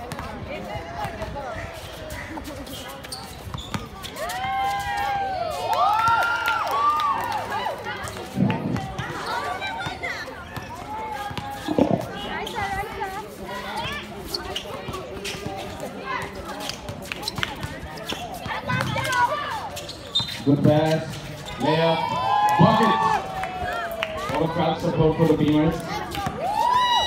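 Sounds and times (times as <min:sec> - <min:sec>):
basketball bouncing on court: 0:16.9 - 0:19.2.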